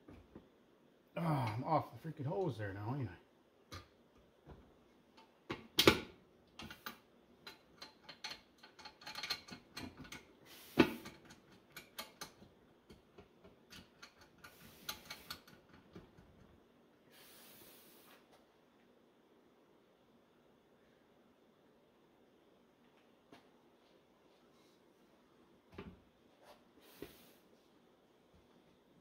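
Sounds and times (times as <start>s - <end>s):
metal parts clicking and knocking: 6.6s - 10.3s
soft hiss: 14.4s - 29.0s.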